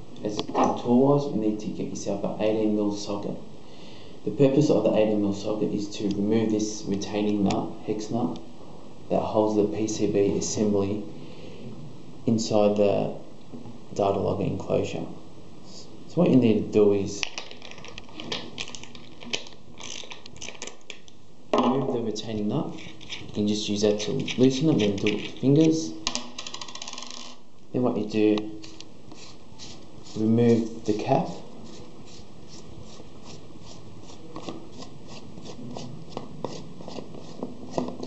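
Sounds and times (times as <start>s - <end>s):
plastic cap threads rasping: 17.3s - 21.0s, 22.7s - 23.4s.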